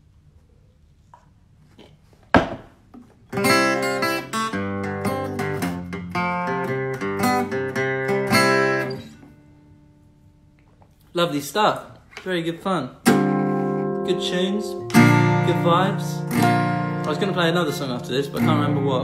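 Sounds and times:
acoustic guitar strumming: 0:03.3 - 0:10.4, 0:13.0 - 0:19.0.

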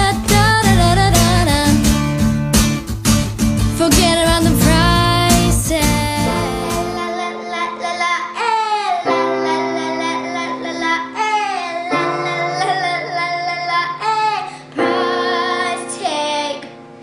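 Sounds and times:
girl singing pop song: 0:00.0 - 0:02.5, 0:03.6 - 0:17.0
keyboard chords: 0:00.0 - 0:17.0.

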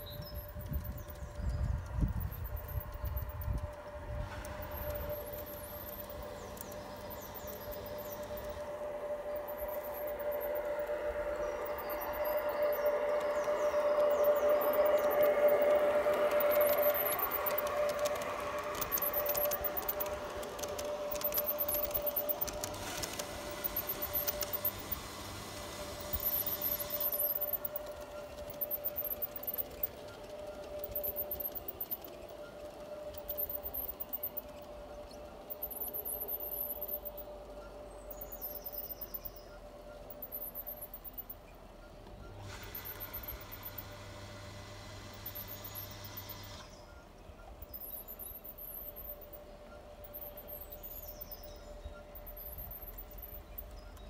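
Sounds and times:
model train motor whine: 0:00.0 - 0:54.0
wheels clicking over rails: 0:00.0 - 0:54.0.

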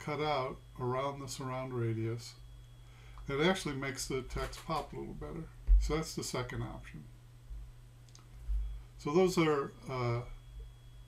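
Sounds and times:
steady low hum: 0:00.0 - 0:11.0
soft low thumps: 0:05.6 - 0:06.0.

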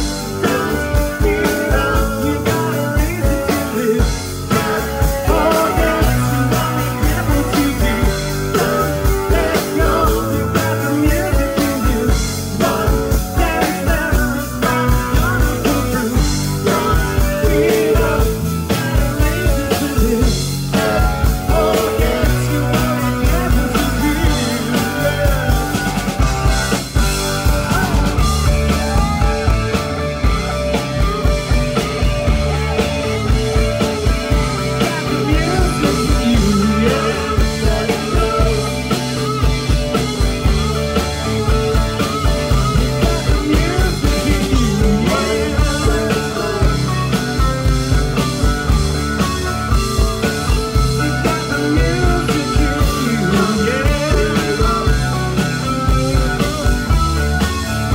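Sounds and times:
man singing: 0:00.0 - 0:26.2, 0:34.3 - 0:40.6, 0:42.5 - 0:47.8, 0:50.7 - 0:57.0
drum kit beat: 0:00.0 - 0:57.9
electric guitars: 0:00.0 - 0:57.9
live rock band playing: 0:00.0 - 0:57.9.

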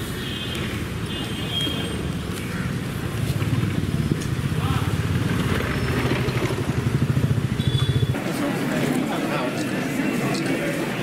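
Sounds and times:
motor scooter engine passing: 0:03.1 - 0:09.6.

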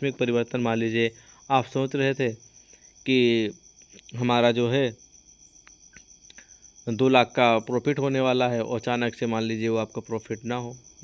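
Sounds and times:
man's voice: 0:06.9 - 0:10.8.

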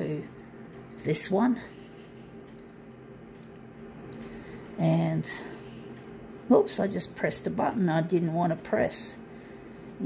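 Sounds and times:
photocopier humming: 0:00.0 - 0:10.0.

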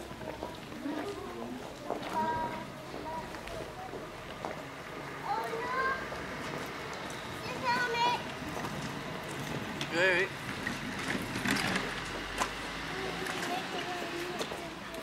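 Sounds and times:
outdoor background hubbub: 0:00.0 - 0:15.0
child's high-pitched calls: 0:05.2 - 0:06.1, 0:07.4 - 0:08.3.

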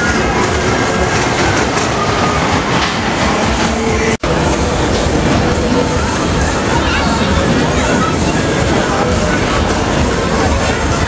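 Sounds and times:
roller coaster rattling rumble: 0:00.0 - 0:11.0.

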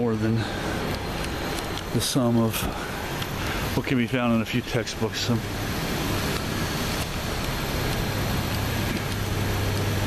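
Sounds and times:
low even hum: 0:00.0 - 0:10.0
passing vehicles: 0:00.0 - 0:10.0.

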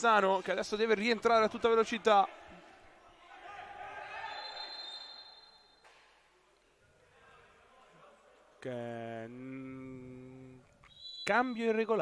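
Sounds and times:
faint arena noise: 0:00.0 - 0:12.0
referee's whistle blast: 0:04.2 - 0:05.8, 0:10.9 - 0:12.0.

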